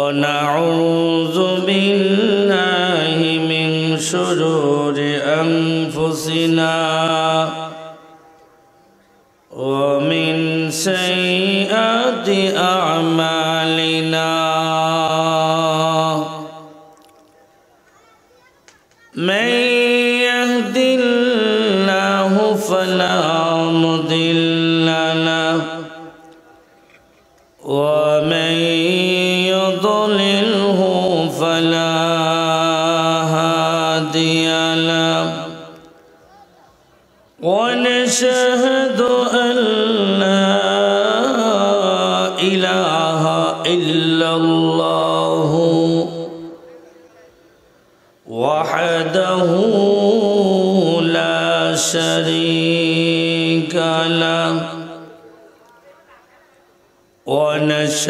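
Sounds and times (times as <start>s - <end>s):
man chanting: 0.0s - 8.6s, 9.5s - 16.9s, 19.1s - 26.3s, 27.6s - 47.5s, 48.2s - 56.4s, 57.1s - 58.0s.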